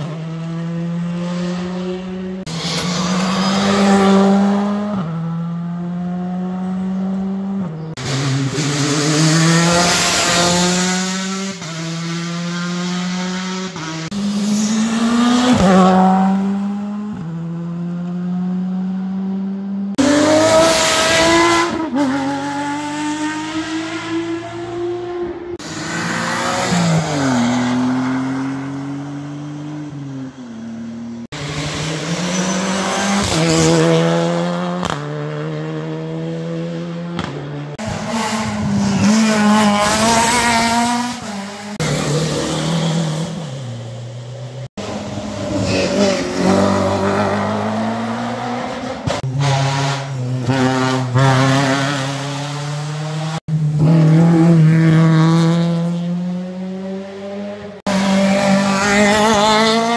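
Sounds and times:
rally car engine revving: 0.0 - 30.0, 30.6 - 59.9.

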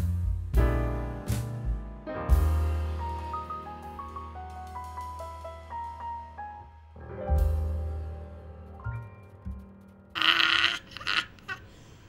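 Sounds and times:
person's breathy vocal cry: 10.2 - 12.0.

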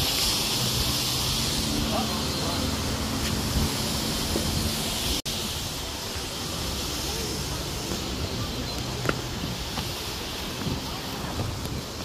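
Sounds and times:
rushing hiss: 0.0 - 12.0.

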